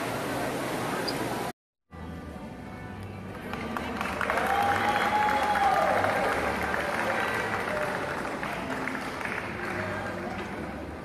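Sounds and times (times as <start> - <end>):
music: 1.9 - 11.0
audience applauding: 3.5 - 10.5
crowd cheering: 4.0 - 8.7.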